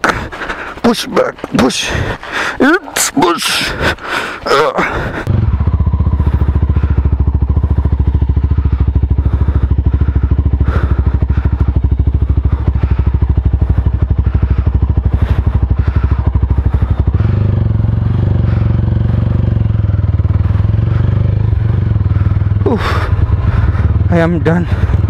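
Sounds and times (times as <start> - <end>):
motorcycle engine running at low revs: 4.5 - 25.0.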